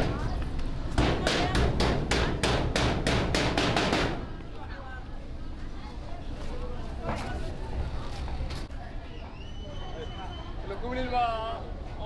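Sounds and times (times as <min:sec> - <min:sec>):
hammer striking sheet-metal door: 0:01.0 - 0:04.3.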